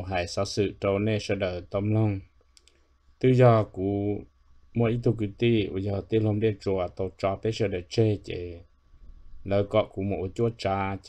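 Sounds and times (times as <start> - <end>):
man speaking: 0.0 - 2.3, 3.2 - 8.7, 9.4 - 11.0
faint quick clicks: 2.4 - 2.8.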